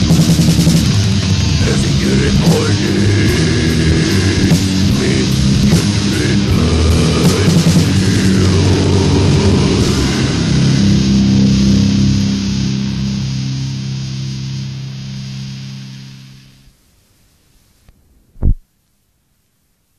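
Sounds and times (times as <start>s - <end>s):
death metal band playing: 0.0s - 15.9s
distorted guitar chord ringing: 0.0s - 16.7s
short low thump: 18.4s - 18.6s.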